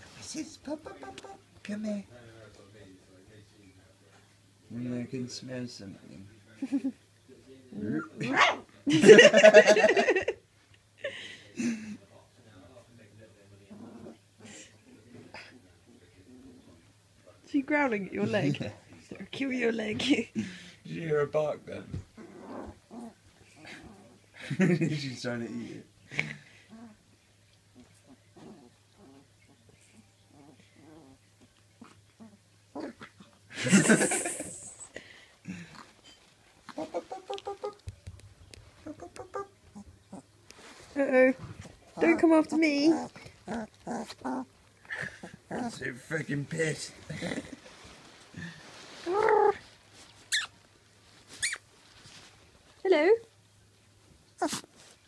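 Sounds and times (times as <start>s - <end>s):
puppy barking: 8.2s - 8.6s
puppy growling: 13.7s - 14.6s, 22.1s - 24.4s, 26.2s - 34.9s, 36.7s - 37.8s, 38.8s - 40.3s, 41.6s - 46.1s, 46.9s - 49.7s, 54.4s - 54.7s.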